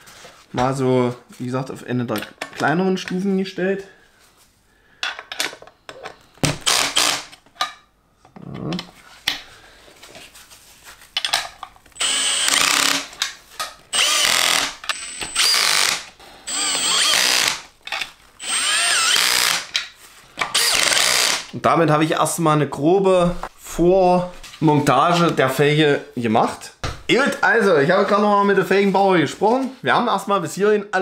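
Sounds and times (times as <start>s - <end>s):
cordless drill whining: 6.6s - 7.3s, 12.0s - 13.1s, 13.9s - 17.7s, 18.4s - 19.7s, 20.5s - 21.5s.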